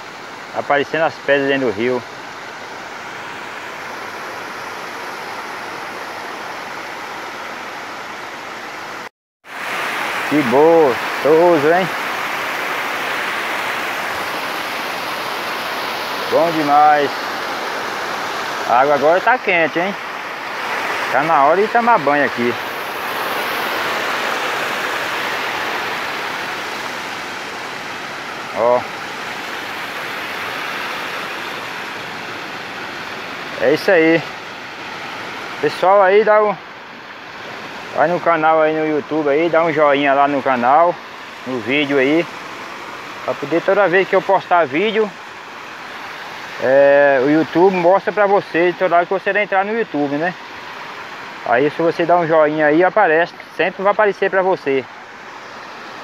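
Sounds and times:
shallow river running over stones: 0.0 - 56.0
water rushing over weir: 0.0 - 56.0.

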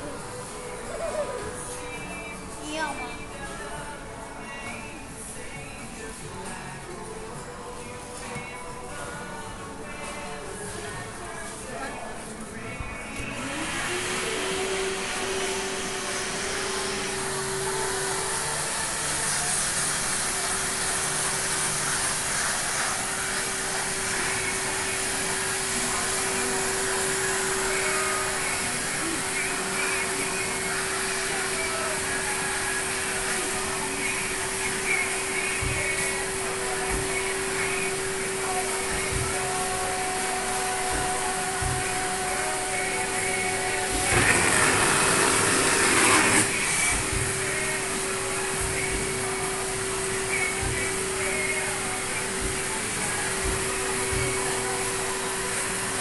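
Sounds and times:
hair vacuum motor with suction hiss: 13.0 - 56.0.

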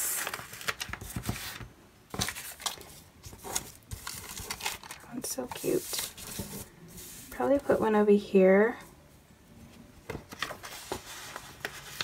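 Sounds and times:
paper rustling and crackling: 0.0 - 7.7, 10.1 - 12.0.

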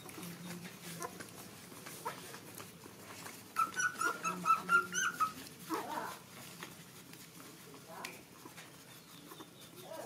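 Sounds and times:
puppies whimpering: 0.0 - 7.7, 8.3 - 10.0.

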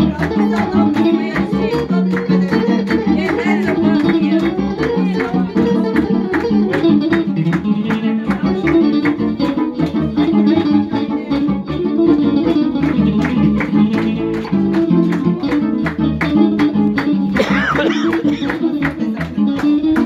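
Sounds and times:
electric guitar: 0.0 - 20.0
percussive beat: 0.0 - 20.0.

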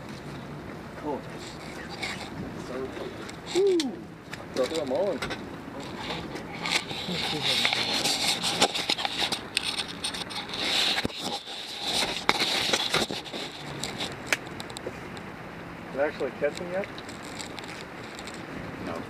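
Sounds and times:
wood fire crackling and popping: 1.5 - 15.3, 16.4 - 18.5.

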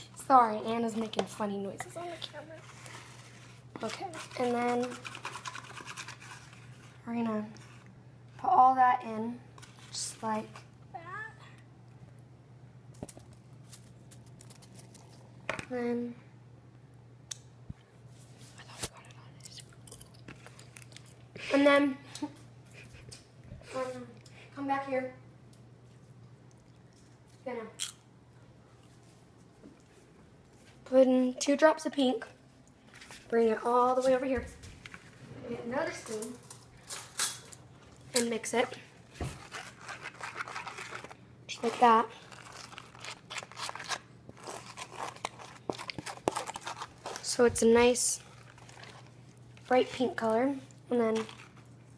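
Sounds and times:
low steady hum: 0.0 - 51.9
paper crinkles: 2.1 - 7.9, 13.1 - 15.3, 39.2 - 51.9
spoon scraping paper bowl: 2.2 - 7.9, 39.2 - 49.1.

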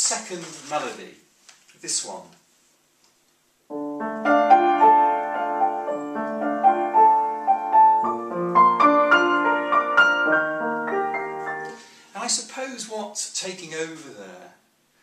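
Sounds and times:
upright piano melody: 3.7 - 11.9.

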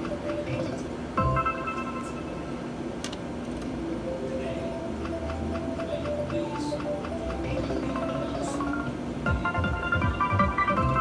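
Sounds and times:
slot machine background tones: 0.0 - 2.8, 3.7 - 11.0
slot machine click: 1.2 - 2.5
reels ticking while spinning: 4.9 - 7.9.

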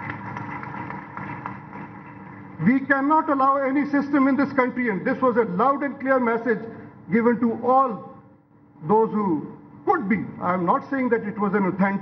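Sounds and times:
audience applauding: 0.0 - 2.5.

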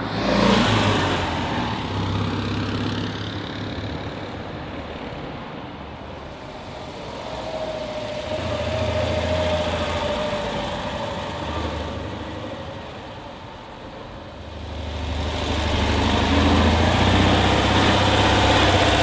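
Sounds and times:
car engine driving by: 6.1 - 19.0.

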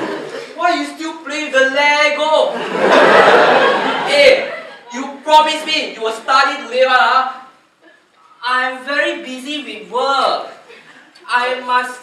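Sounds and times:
audience laughing: 0.0 - 0.6, 2.5 - 5.2
man speaking: 0.5 - 2.6, 4.0 - 7.6, 8.3 - 10.6, 11.2 - 12.0.

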